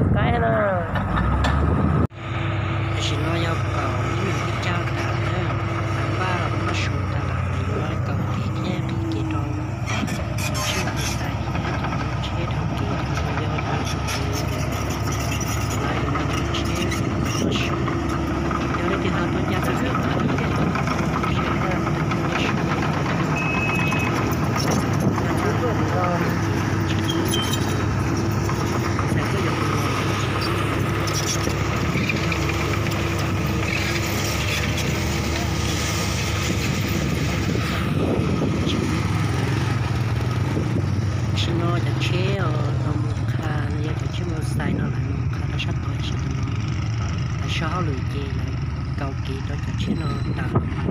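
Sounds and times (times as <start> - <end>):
excavator diesel engine running: 0.0 - 50.9.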